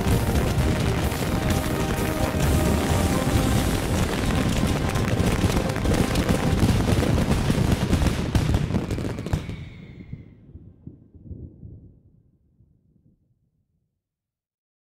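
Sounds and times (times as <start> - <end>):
fireworks crackling bangs: 0.0 - 10.3.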